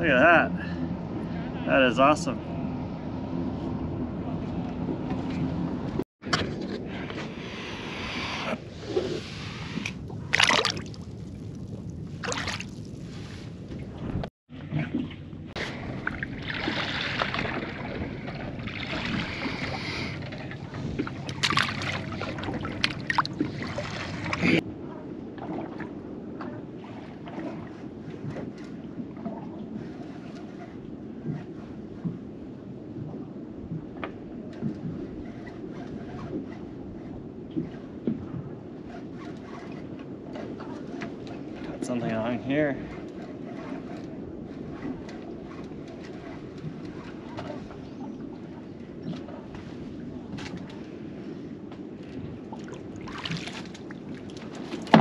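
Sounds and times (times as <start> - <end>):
water sloshing against hull: 0.0 - 55.0
wind on microphone: 0.0 - 55.0
handling knocks and rustles: 53.3 - 55.0.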